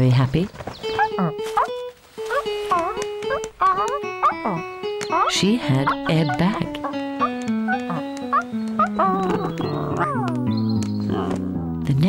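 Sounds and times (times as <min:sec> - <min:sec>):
light cartoon music: 0:00.8 - 0:12.0
cartoon dog yips: 0:02.3 - 0:04.6, 0:07.7 - 0:10.4.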